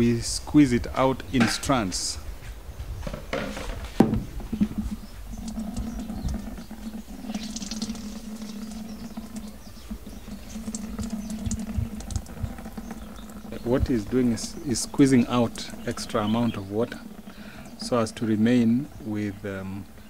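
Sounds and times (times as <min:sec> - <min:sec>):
steady low hum: 0:00.0 - 0:20.0
water dripping into a plastic bucket: 0:04.4 - 0:18.2.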